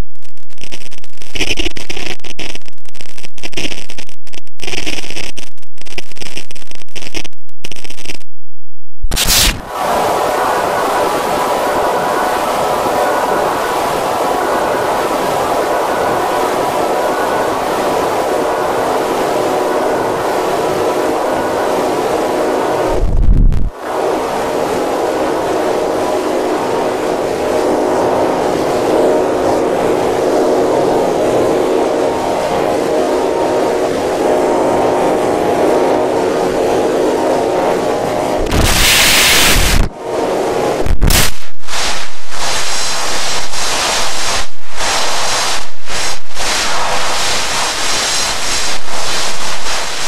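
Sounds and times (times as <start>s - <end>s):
distorted noisy wash: 0.0s - 8.3s, 9.1s - 50.0s.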